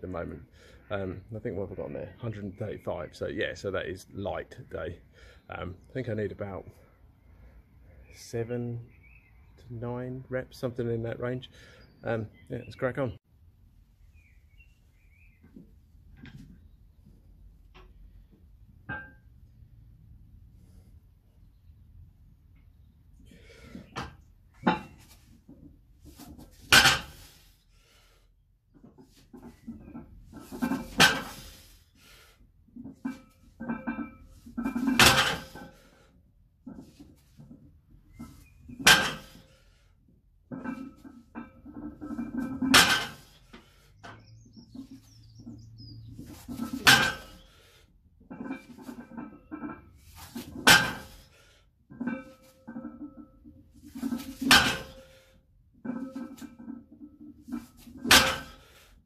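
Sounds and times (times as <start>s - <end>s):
barbell plates hitting floor: 26.7s - 27.3s, 30.5s - 31.5s, 33.7s - 35.7s, 38.8s - 39.4s, 42.1s - 43.3s, 46.4s - 47.4s, 50.3s - 51.2s, 54.0s - 55.0s, 57.6s - 58.6s.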